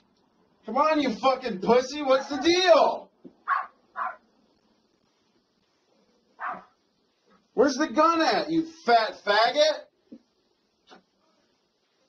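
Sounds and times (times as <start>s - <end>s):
dog barking: 3.4s - 4.2s, 6.4s - 6.8s.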